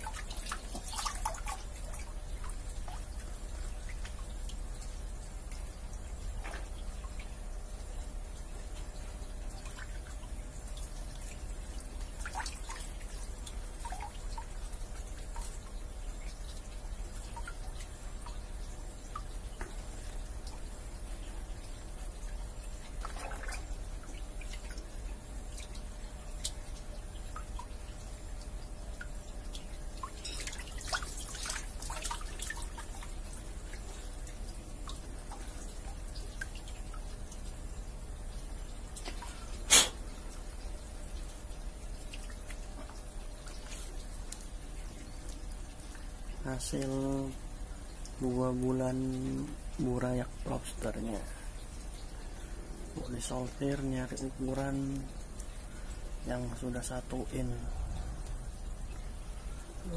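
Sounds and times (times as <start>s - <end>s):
steady low hum: 0.0s - 59.9s
water drips and splashes: 0.0s - 59.9s.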